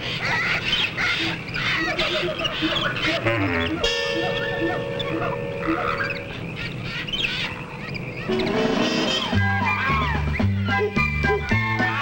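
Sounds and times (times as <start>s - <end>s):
animal and bird calls: 0.0s - 12.0s
music notes: 3.3s - 6.4s.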